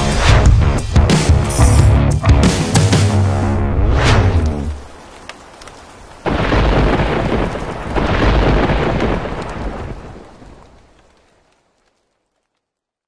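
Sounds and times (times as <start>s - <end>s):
thunder rumbling: 3.3s - 11.2s
rain: 4.0s - 13.0s.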